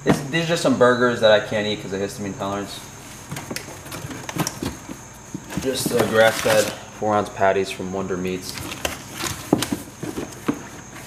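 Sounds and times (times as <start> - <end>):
packaging crinkling and rustling: 3.3 - 6.8, 8.4 - 11.0.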